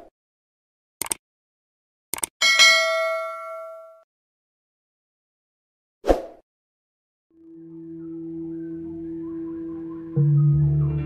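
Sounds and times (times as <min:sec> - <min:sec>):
quick double click: 0:01.0 - 0:01.2, 0:02.1 - 0:02.3
bright bell-like ding: 0:02.4 - 0:04.0.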